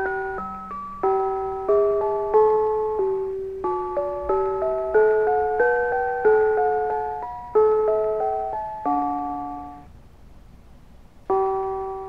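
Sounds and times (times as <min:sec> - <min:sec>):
toy playing tune on small bells: 0:00.0 - 0:09.9, 0:11.3 - 0:12.0.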